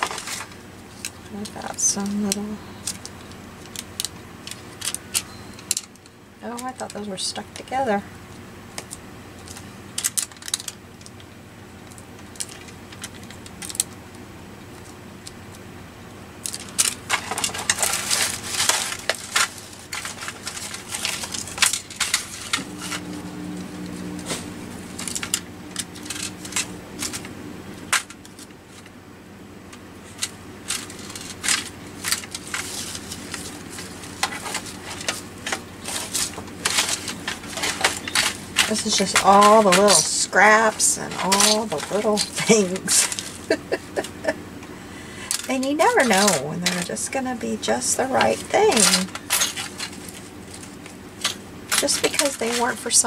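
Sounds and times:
trinkets clattering in metal tin: 35.8s - 44.1s, 48.1s - 50.0s.

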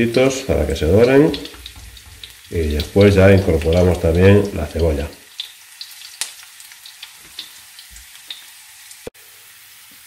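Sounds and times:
garlic sizzling in frying pan: 0.0s - 10.0s.

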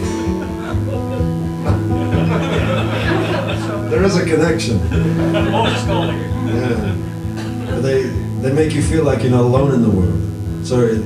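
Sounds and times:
acoustic guitar notes ringing: 0.0s - 10.6s
guitar strum: 0.0s - 11.0s.

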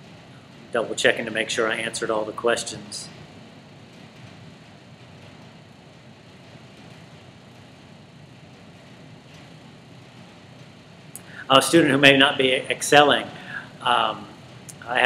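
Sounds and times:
room tone hiss: 0.0s - 15.0s.

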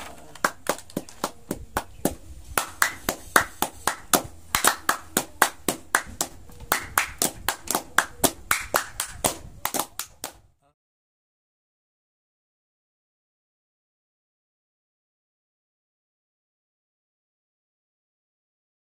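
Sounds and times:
people clapping: 0.0s - 10.4s.

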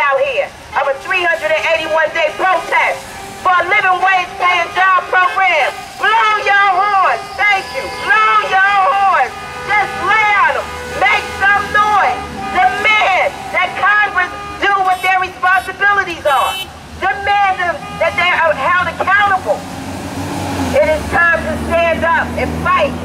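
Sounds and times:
woman shouting: 0.0s - 19.6s
street traffic rumble: 0.0s - 23.0s
heavy vehicle engine: 0.2s - 23.0s.

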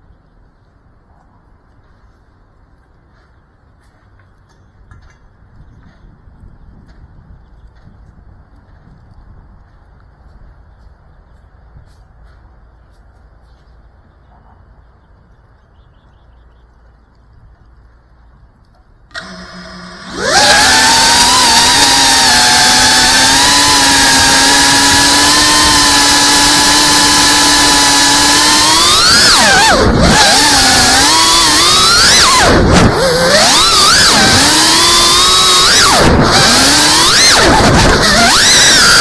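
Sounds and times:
drone motors whining: 19.1s - 39.0s.

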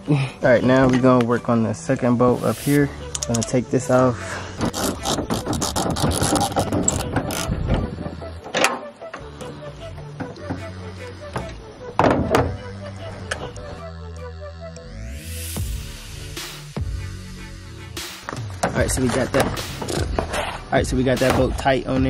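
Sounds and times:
background music with bass: 0.0s - 22.0s.

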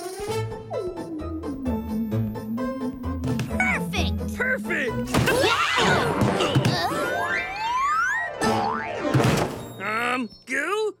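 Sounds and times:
background music: 0.0s - 9.6s.

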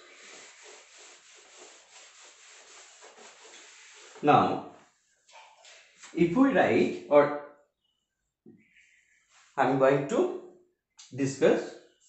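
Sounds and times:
eraser wiping a whiteboard: 0.0s - 5.3s.

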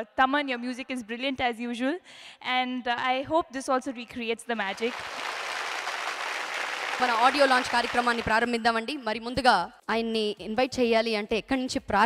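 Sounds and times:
audience applauding: 4.7s - 8.5s.

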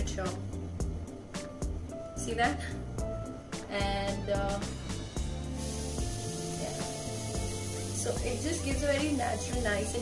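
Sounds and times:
music with low held notes: 0.0s - 10.0s
faint steady hiss: 5.0s - 10.0s.

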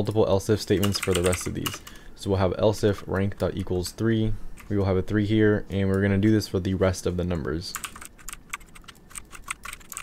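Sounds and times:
computer keyboard typing: 0.8s - 2.0s, 7.7s - 10.0s.

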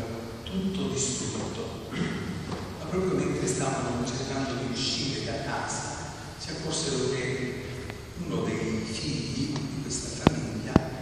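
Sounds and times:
person speaking: 0.0s - 11.0s.

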